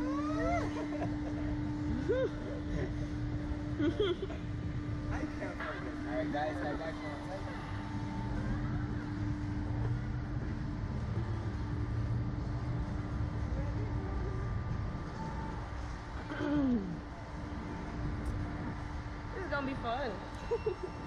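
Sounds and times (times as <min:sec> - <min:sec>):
low mechanical rumble: 0:00.0 - 0:21.0
steady hum: 0:00.0 - 0:21.0.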